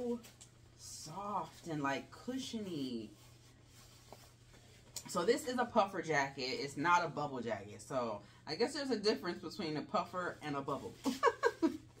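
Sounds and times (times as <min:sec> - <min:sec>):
jacket fabric rustling: 0:00.0 - 0:06.6, 0:10.3 - 0:12.0.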